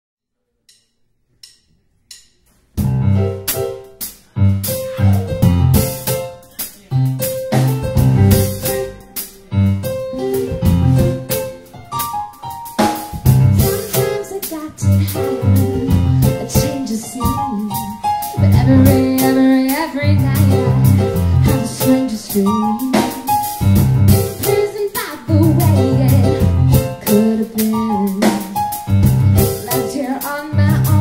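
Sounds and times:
drum kit: 0:00.7 - 0:31.0
bass: 0:01.4 - 0:31.0
electric keyboard chords: 0:02.8 - 0:31.0.

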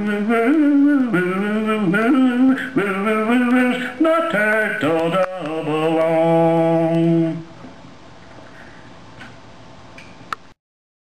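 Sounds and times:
recording hiss: 0:00.0 - 0:10.6.

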